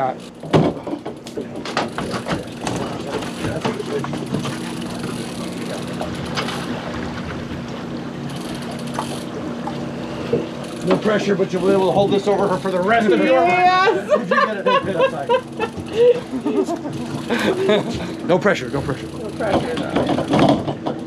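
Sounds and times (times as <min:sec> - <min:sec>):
outboard motor humming: 0:00.0 - 0:21.0
knocks and rattles: 0:00.4 - 0:06.7, 0:19.4 - 0:21.0.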